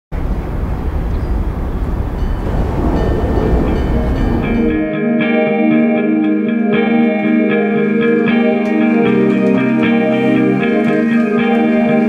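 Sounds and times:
train rumbling on rails: 0:00.2 - 0:04.9
faint musical tones: 0:02.2 - 0:05.9.

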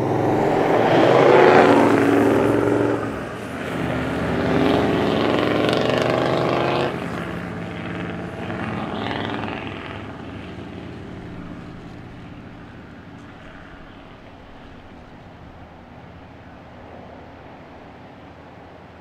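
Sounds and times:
engines revving: 0:00.0 - 0:18.9
vehicles driving through sand: 0:00.0 - 0:19.0.

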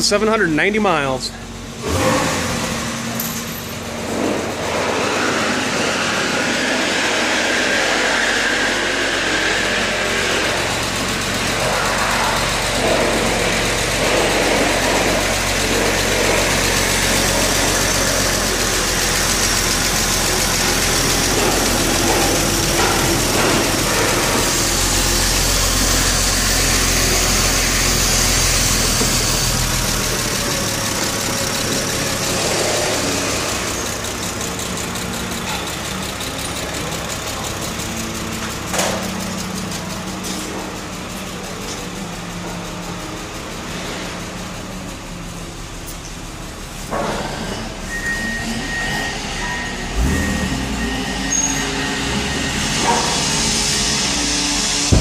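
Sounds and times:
car engine idling: 0:00.0 - 0:48.2, 0:49.3 - 0:55.0.

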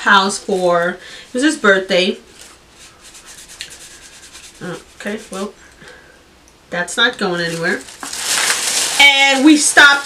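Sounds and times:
tissue rubbing skin: 0:00.1 - 0:05.6, 0:07.4 - 0:10.0.

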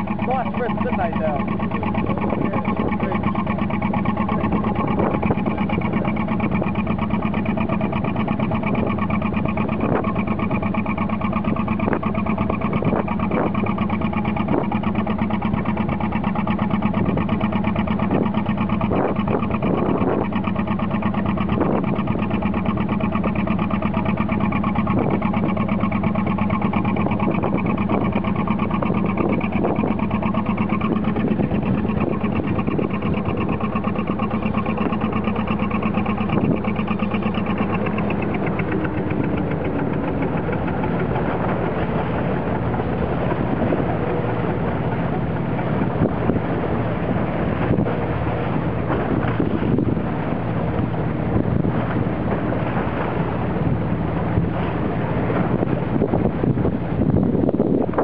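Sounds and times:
boat engine humming: 0:00.0 - 0:58.0.

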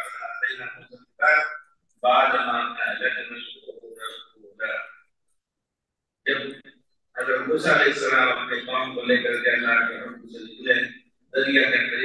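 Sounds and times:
man lecturing into a microphone: 0:00.0 - 0:05.2, 0:06.2 - 0:12.0.

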